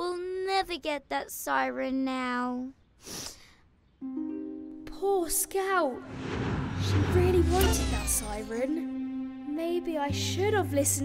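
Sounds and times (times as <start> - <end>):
plucked ukulele notes: 4.0 - 5.0.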